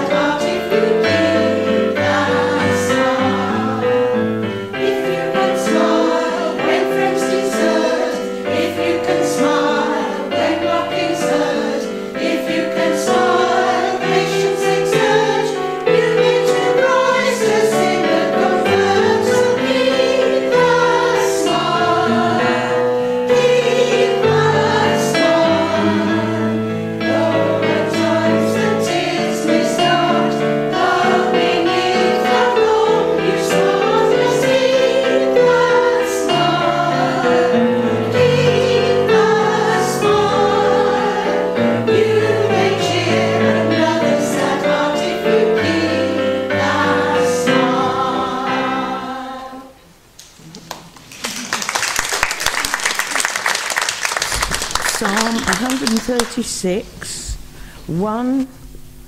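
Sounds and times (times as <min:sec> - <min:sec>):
women's choir singing: 0:00.0 - 0:50.0.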